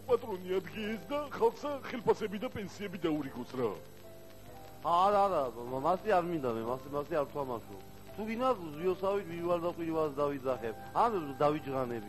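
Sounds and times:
man speaking: 0.0 - 3.9, 4.8 - 12.0.

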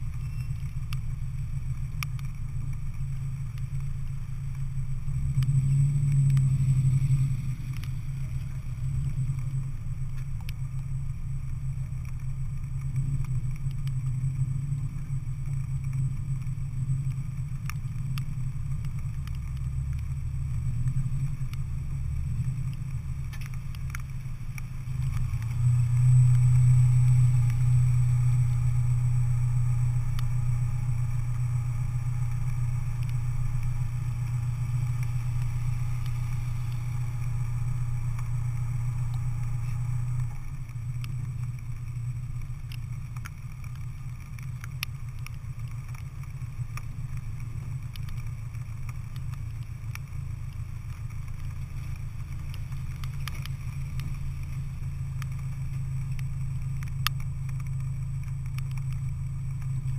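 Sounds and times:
car engines idling: 0.0 - 59.9
car pulling up: 0.0 - 59.9.

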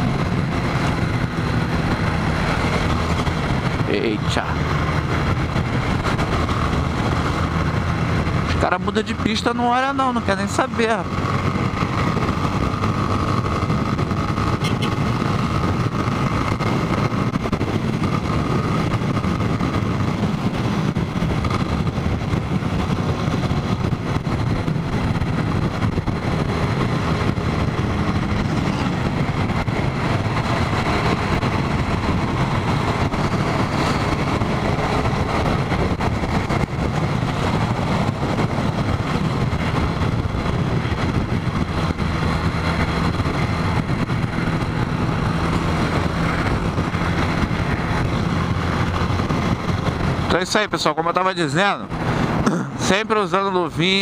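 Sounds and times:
motorcycle engine running: 0.0 - 54.0
wind rush and road noise: 0.0 - 54.0.

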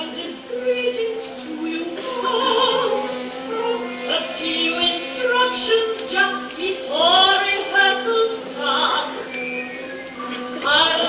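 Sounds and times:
orchestral accompaniment: 0.0 - 11.0
voices singing: 0.0 - 11.0.

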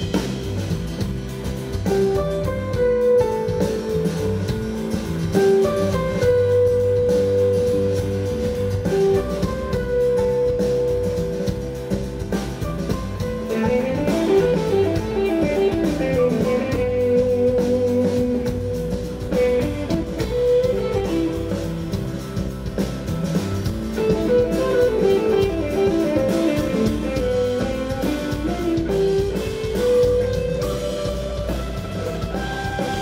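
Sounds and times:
drum kit: 0.0 - 33.0
electric guitars: 0.0 - 33.0.

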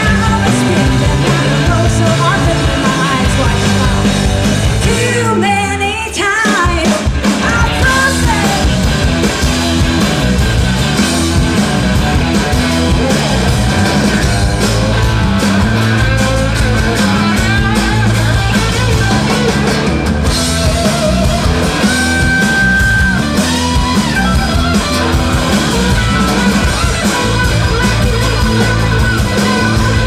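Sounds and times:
bass and drums: 0.0 - 30.0
electric guitar solo: 7.4 - 30.0.

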